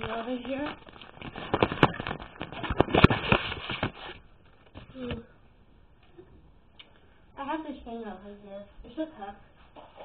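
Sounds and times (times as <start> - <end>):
objects clattering: 0.0 - 4.9
microphone handling noise: 0.0 - 5.2.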